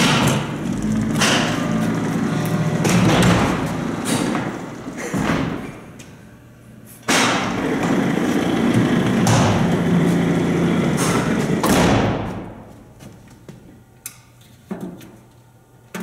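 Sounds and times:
elevator doors sliding and rattling: 0:00.0 - 0:05.9, 0:07.2 - 0:11.6.

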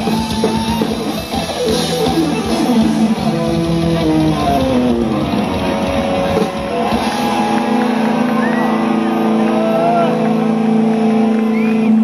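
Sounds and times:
distorted electric guitar chord drone: 0:00.0 - 0:12.0
high sliding guitar tones: 0:00.0 - 0:12.0.

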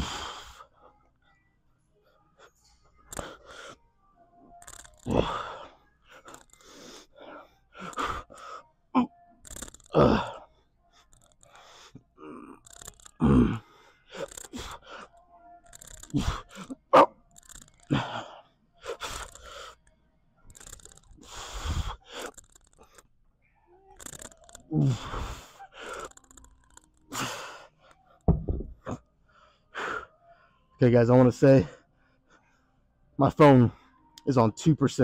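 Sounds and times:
man gasping breaths: 0:00.0 - 0:00.6
man groaning: 0:13.2 - 0:13.6.

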